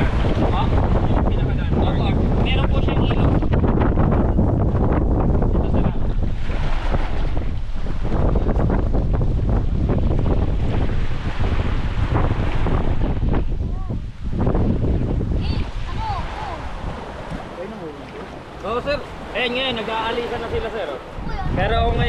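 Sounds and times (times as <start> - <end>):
wind buffeting microphone: 0.0 - 22.0
small surf washing up sand: 6.0 - 13.4, 14.0 - 21.8.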